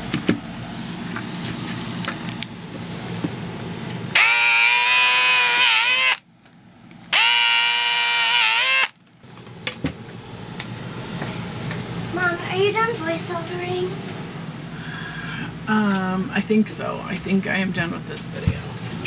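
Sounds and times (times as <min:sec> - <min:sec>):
cordless drill whining: 0:04.2 - 0:06.2, 0:07.1 - 0:09.0.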